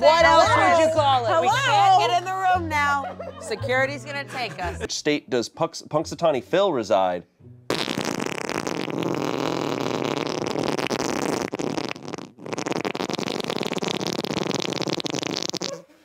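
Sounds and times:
person making raspy mouth noise: 0:07.7 - 0:16.0.

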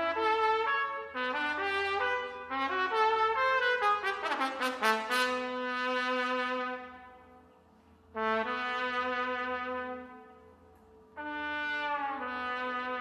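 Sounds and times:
trumpet playing notes: 0:00.0 - 0:07.3, 0:08.1 - 0:10.6, 0:11.2 - 0:13.0.

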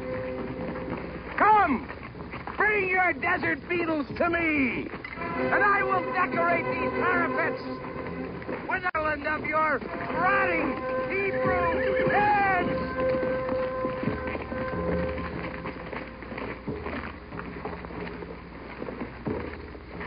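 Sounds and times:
long horn note: 0:05.2 - 0:08.5, 0:09.8 - 0:16.3
voices shouting and whooping: 0:10.1 - 0:12.9.

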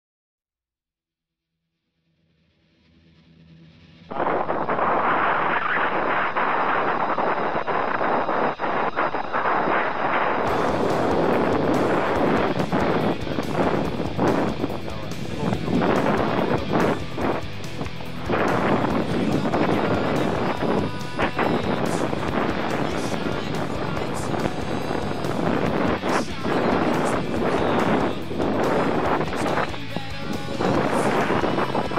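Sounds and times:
wind blasting microphone: 0:04.1 - 0:31.9.

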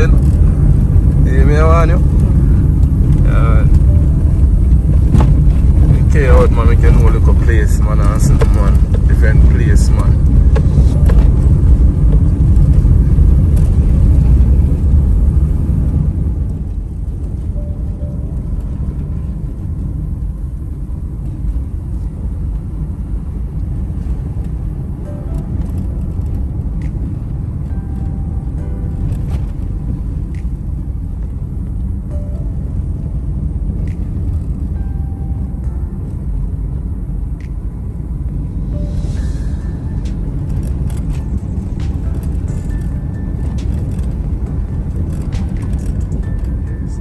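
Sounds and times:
car cabin rumble: 0:00.0 - 0:47.0
faint music: 0:00.0 - 0:47.0.

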